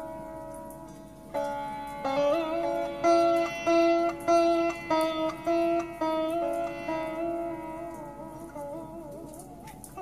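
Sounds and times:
sitar notes plucked: 0.0 - 10.0.

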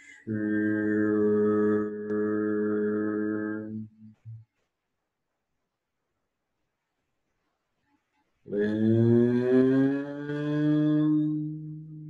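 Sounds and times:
man chanting low vowel tone: 0.0 - 4.4, 8.5 - 12.0.

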